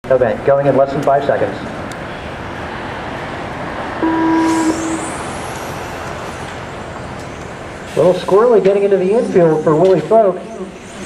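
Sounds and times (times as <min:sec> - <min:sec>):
outdoor background noise: 0:00.0 - 0:11.0
electronic start tone: 0:04.0 - 0:05.5.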